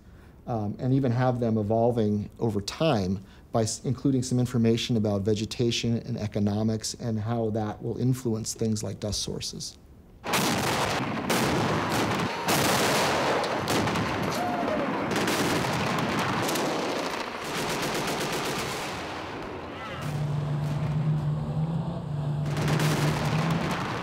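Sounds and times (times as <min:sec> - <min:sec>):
single gunshots: 0:10.2 - 0:20.9, 0:22.4 - 0:24.0
machine-gun fire: 0:10.2 - 0:21.0, 0:22.4 - 0:24.0
steady low hum: 0:17.3 - 0:24.0.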